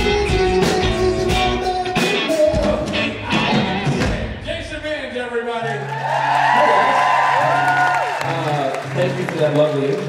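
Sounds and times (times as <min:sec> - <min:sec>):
audience applauding and cheering: 0:05.6 - 0:10.0
high whoops: 0:05.9 - 0:08.3
man talking into a microphone: 0:06.6 - 0:10.0.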